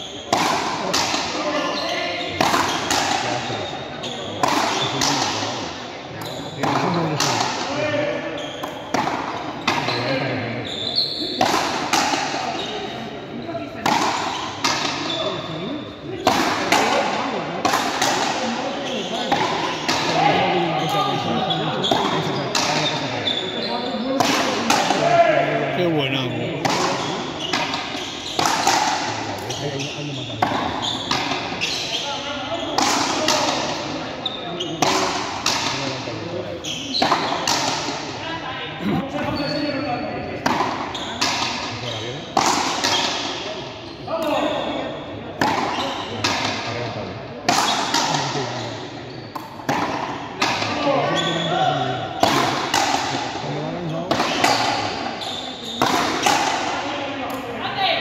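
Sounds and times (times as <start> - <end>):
voices talking: 0.0 - 58.0
racquets striking ball: 0.3 - 1.4, 2.3 - 3.5, 4.3 - 5.5, 6.5 - 7.8, 8.6 - 10.0, 11.4 - 12.7, 13.8 - 15.2, 16.2 - 18.6, 19.2 - 20.5, 21.8 - 23.0, 24.1 - 25.4, 26.6 - 29.6, 30.2 - 32.0, 32.6 - 34.0, 34.6 - 36.0, 37.0 - 38.2, 40.4 - 43.5, 45.4 - 46.7, 47.4 - 48.4, 49.3 - 50.9, 52.1 - 53.4, 54.1 - 57.4.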